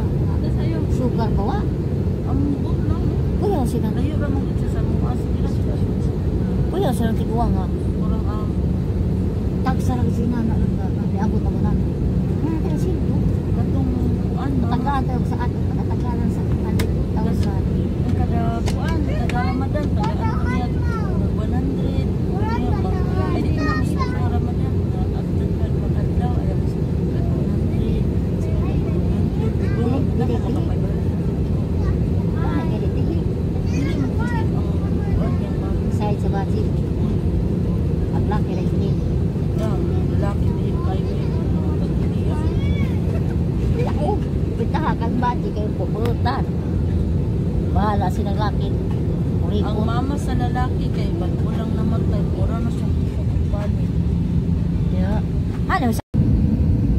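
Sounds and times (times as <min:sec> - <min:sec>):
voices: 0:00.0 - 0:56.1
airliner cabin rumble: 0:00.0 - 0:56.9.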